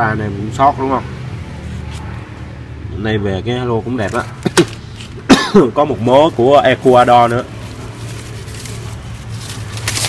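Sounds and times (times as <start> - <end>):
newspaper crinkling: 6.8 - 10.0.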